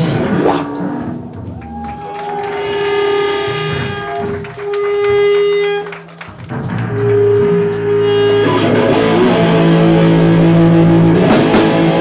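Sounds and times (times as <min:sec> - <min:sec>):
electric guitar ringing notes: 0:03.2 - 0:12.0
bass guitar ringing notes: 0:03.4 - 0:12.0.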